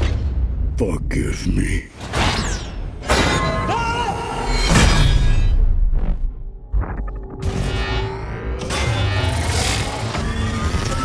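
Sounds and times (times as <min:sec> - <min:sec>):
cinematic trailer music: 0:00.0 - 0:11.0.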